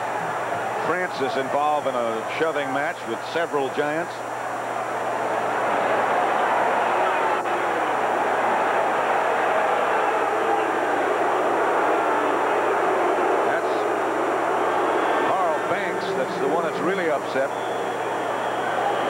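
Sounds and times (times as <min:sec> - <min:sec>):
stadium crowd din: 0:00.0 - 0:19.0.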